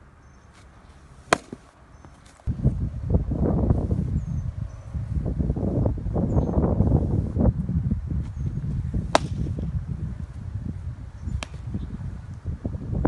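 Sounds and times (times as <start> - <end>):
baseball smacking into mitt: 1.3 - 2.3, 9.1 - 9.7, 11.3 - 11.8
wind rumbling on microphone: 1.9 - 13.0.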